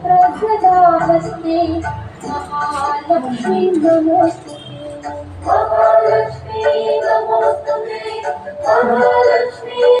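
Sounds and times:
musical accompaniment: 0:00.0 - 0:10.0
person singing devotional song: 0:00.0 - 0:10.0.

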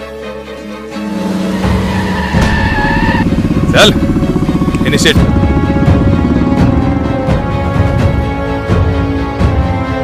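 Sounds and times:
film music: 0:00.0 - 0:10.0
motorcycle engine running: 0:01.0 - 0:09.0.

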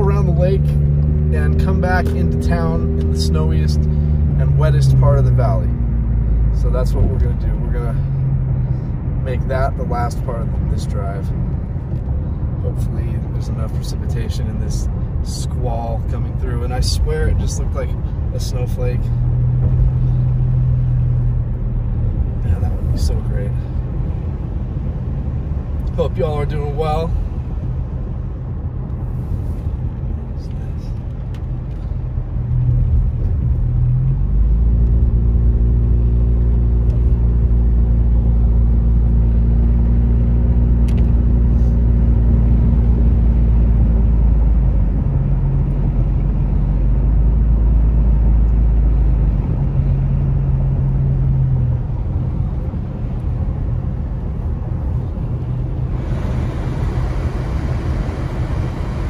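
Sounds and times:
car engine droning: 0:00.0 - 0:59.0
tyres on a wet road: 0:00.0 - 0:59.0
defroster fan blowing: 0:55.0 - 0:59.0.

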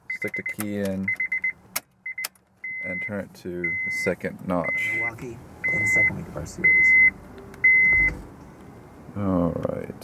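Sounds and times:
dashboard warning chime beeping: 0:00.0 - 0:08.3.

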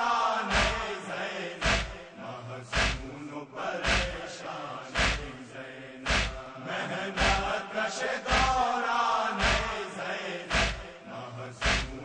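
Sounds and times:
person chanting a lament: 0:00.0 - 0:12.0
steady beat: 0:00.5 - 0:00.8, 0:01.6 - 0:02.0, 0:02.7 - 0:03.2, 0:03.8 - 0:04.2, 0:05.0 - 0:05.4, 0:06.1 - 0:06.4, 0:07.2 - 0:07.5, 0:08.3 - 0:08.6, 0:09.4 - 0:09.7, 0:10.5 - 0:10.9, 0:11.6 - 0:12.0.

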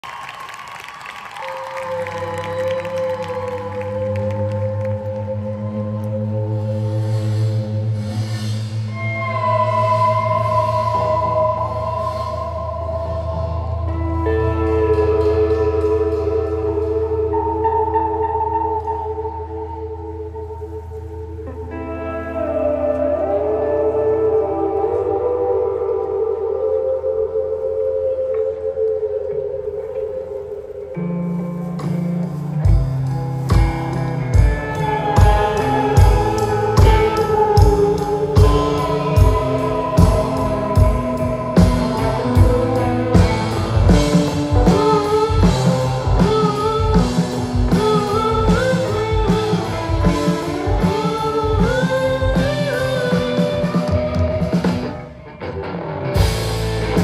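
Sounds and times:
crowd noise: 0:00.0 - 0:57.0
rock band playing: 0:13.0 - 0:20.3, 0:31.5 - 0:57.0.

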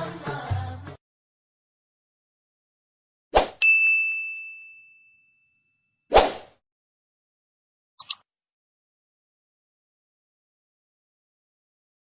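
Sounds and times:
bright ringing ding: 0:03.6 - 0:06.0
quick clicks: 0:08.0 - 0:08.2.

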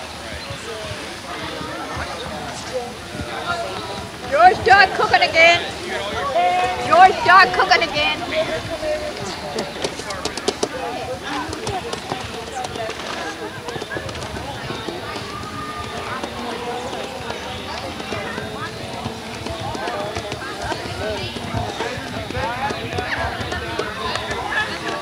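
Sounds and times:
people chattering: 0:00.0 - 0:25.0.

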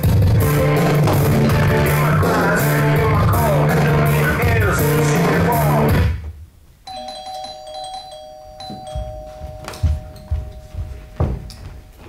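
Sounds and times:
rock music with guitar: 0:00.0 - 0:06.2
dull thumps: 0:00.7 - 0:02.0, 0:08.8 - 0:12.0
two-tone doorbell chime: 0:06.9 - 0:12.0.

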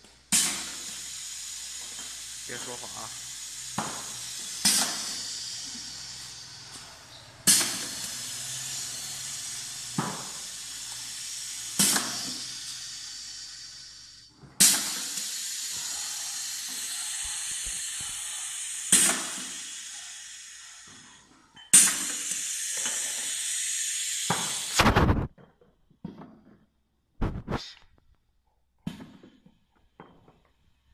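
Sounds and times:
steady air hiss: 0:00.1 - 0:24.9
compressed air hiss bursts: 0:00.2 - 0:25.3
pneumatic filler clacking: 0:00.2 - 0:25.3.

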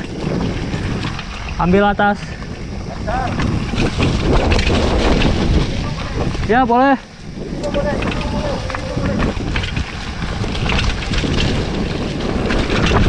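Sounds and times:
bike frame rattling: 0:00.0 - 0:13.0
bike tyre rumble: 0:00.0 - 0:13.0
wind buffeting microphone: 0:00.0 - 0:13.0.

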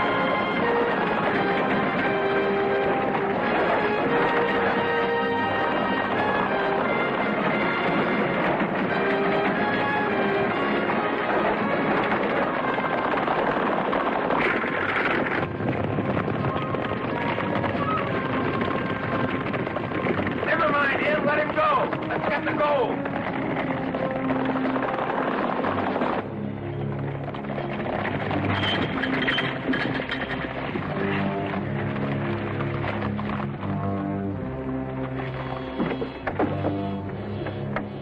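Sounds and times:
film score music: 0:00.0 - 0:38.0.

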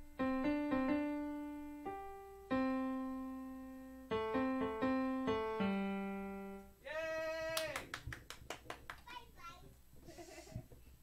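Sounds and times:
hand claps: 0:07.5 - 0:09.2.

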